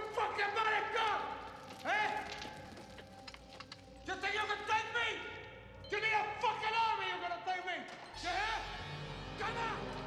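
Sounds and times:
man yelling: 9.4s - 10.0s.

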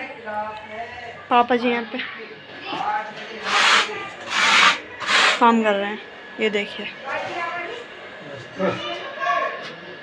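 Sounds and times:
rough rubbing sound: 3.4s - 5.5s.

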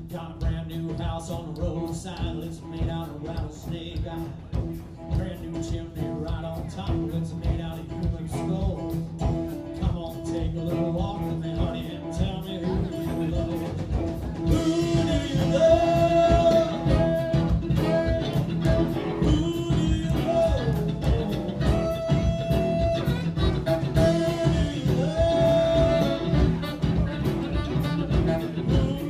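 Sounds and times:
live rock band playing: 0.0s - 29.0s
bending lead guitar notes: 7.9s - 29.0s.

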